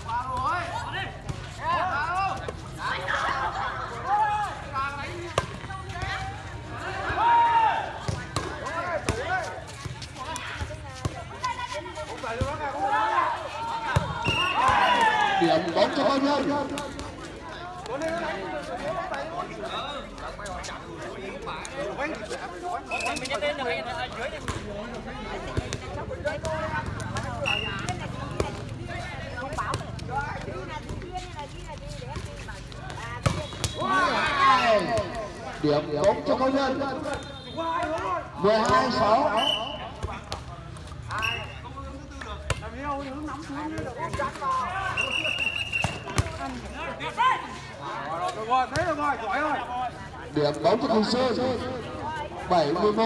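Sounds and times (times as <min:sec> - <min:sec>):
players calling out: 0:00.0 - 0:31.6, 0:32.3 - 0:53.0.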